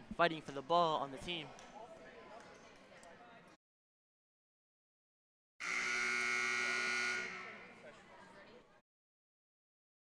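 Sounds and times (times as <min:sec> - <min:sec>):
scoreboard buzzer: 0:05.6 - 0:07.7.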